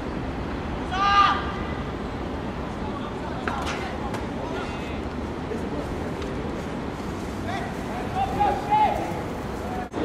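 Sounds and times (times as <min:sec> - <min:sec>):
outdoor background noise: 0:00.0 - 0:10.0
people shouting calls: 0:00.8 - 0:01.7, 0:07.4 - 0:09.3.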